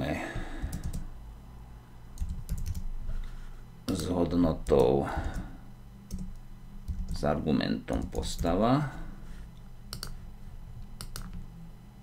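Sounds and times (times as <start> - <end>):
computer keyboard typing: 0.6 - 1.1, 2.2 - 2.9, 6.1 - 7.2, 7.9 - 8.6, 9.9 - 10.2, 11.0 - 11.4.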